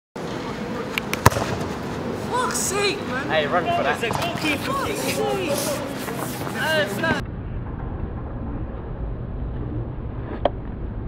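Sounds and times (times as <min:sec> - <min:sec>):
outdoor background noise: 0:00.2 - 0:11.0
football kicked thud: 0:01.2 - 0:01.7.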